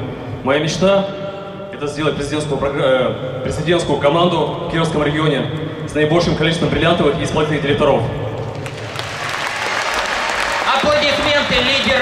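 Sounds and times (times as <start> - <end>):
crowd applauding in a hall: 8.4 - 12.0.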